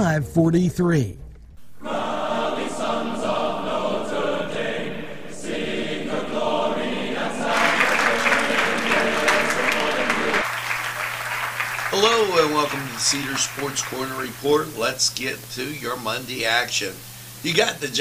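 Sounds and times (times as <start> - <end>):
steady low hum: 0.3 - 18.0
crowd cheering and applause: 1.6 - 14.9
choral music with massed singing: 1.6 - 16.3.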